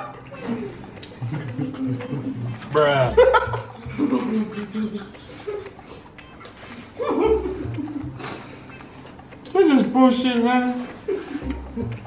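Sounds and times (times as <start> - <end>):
background music: 0.0 - 12.0
high whining laughter: 0.2 - 8.2.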